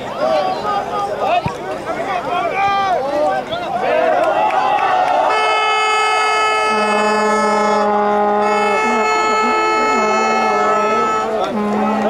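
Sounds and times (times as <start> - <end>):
horns sounding long notes: 3.8 - 12.0.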